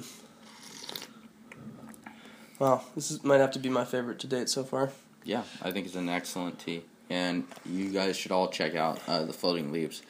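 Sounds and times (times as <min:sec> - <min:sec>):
tea slurping: 0:00.5 - 0:01.2.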